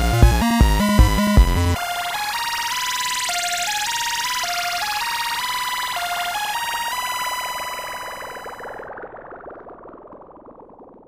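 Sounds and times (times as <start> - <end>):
synthesizer melody: 0.0 - 9.0.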